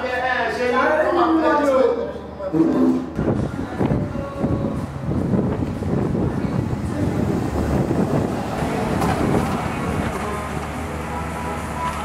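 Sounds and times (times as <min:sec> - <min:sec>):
street noise: 0:00.0 - 0:12.0
vehicle rumbling: 0:02.1 - 0:12.0.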